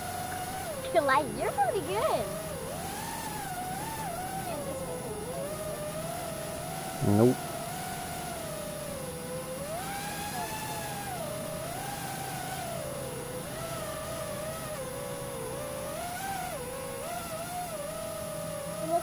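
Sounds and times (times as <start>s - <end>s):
drone motors whining: 0.0s - 19.0s.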